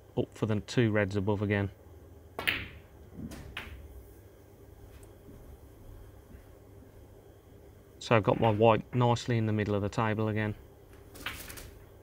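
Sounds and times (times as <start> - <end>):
ball dropping into pocket: 2.4 - 3.8, 8.2 - 9.1, 11.1 - 11.8
snooker balls clicking: 2.4 - 3.9, 8.1 - 9.3, 10.9 - 11.9.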